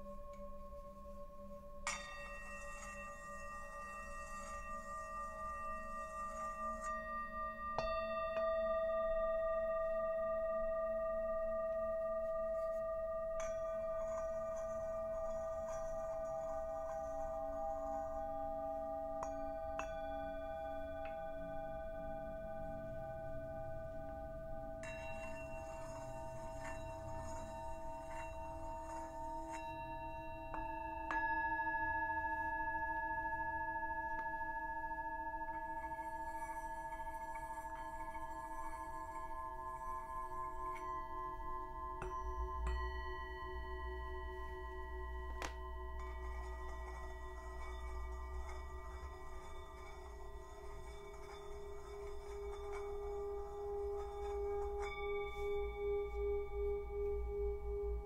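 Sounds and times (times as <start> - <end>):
low pulsing bowl tone: 0.0 - 58.0
singing bowls ringing: 0.0 - 58.0.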